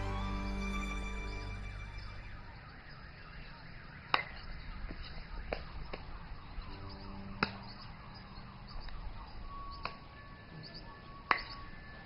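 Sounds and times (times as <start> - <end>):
low outdoor rumble: 0.0 - 2.6
faint whistling tones: 4.4 - 12.0.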